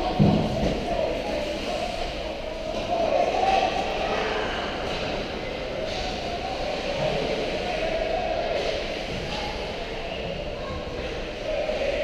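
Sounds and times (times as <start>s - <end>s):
faint voices: 0.0s - 12.0s
ice hockey rink rumble: 0.0s - 12.0s.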